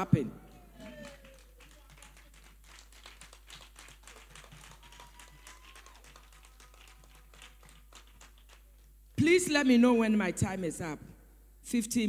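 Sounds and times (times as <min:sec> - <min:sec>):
audience clapping: 0:00.4 - 0:09.2.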